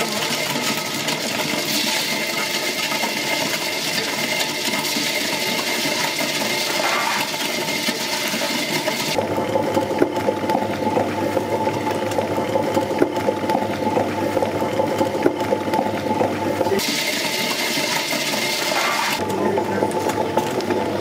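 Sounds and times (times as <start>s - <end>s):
wet grinder churning: 0.0s - 21.0s.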